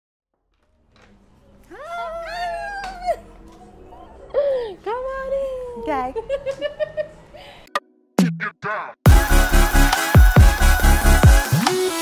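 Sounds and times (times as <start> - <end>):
women squealing: 1.7 - 3.3.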